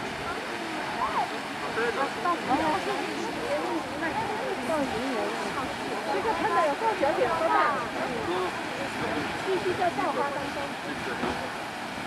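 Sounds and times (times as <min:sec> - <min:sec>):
chatter of onlookers: 0:00.0 - 0:12.0
geyser water jetting and splashing: 0:00.0 - 0:12.0.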